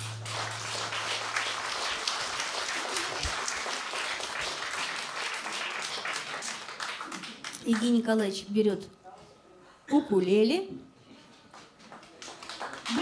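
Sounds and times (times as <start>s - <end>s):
acoustic guitar chord ringing: 0.0s - 1.9s
audience applauding: 0.0s - 8.0s, 11.9s - 13.0s.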